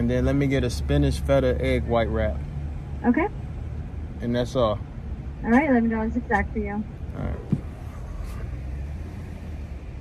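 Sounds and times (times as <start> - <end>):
car engine rumble inside cabin: 0.0 - 10.0
road noise: 0.0 - 10.0.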